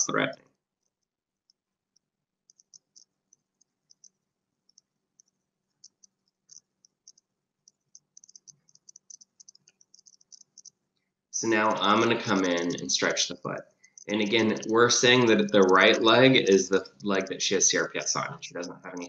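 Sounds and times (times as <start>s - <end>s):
faint high-pitched ticks: 0.0s - 19.0s.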